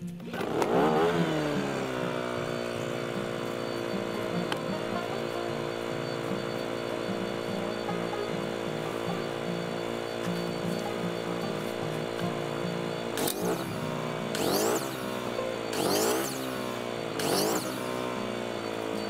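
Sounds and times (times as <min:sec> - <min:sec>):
small chainsaw running: 0:00.3 - 0:19.0.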